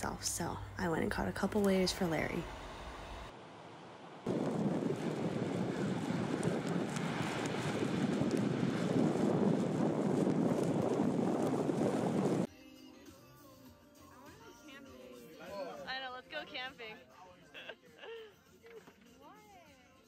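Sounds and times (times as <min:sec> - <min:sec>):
waves breaking: 0:04.0 - 0:12.5.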